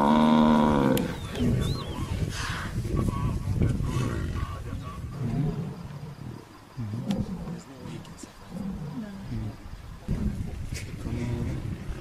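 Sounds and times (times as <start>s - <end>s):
lions growling: 0.0s - 12.0s.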